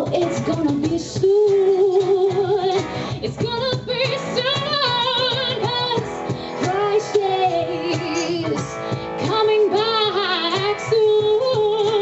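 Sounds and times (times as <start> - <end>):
electric guitar: 0.0 - 12.0
woman singing with vibrato: 0.0 - 12.0.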